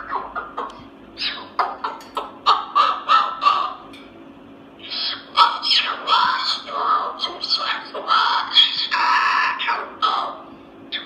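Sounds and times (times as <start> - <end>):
cockatoo babbling in speech-like voice: 4.9 - 10.4.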